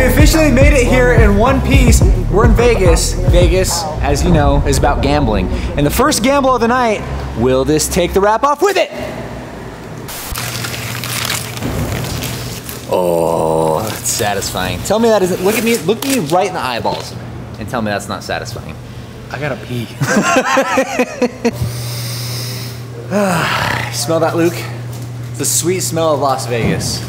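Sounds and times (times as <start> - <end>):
steady low hum: 0.0 - 10.3, 16.6 - 27.0
tape and paper ripping: 10.1 - 17.1
man laughing: 20.0 - 21.6.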